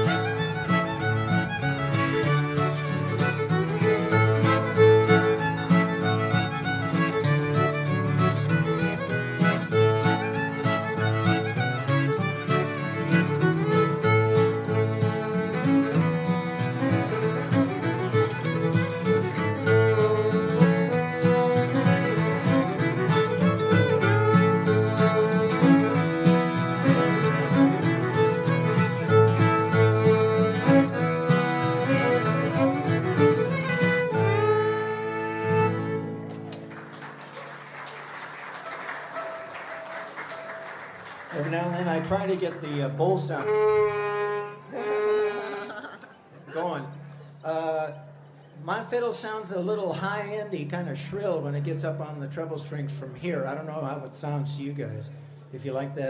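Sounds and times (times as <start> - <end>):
accordion accompaniment: 0.0 - 47.5
fiddle tune: 0.0 - 48.5.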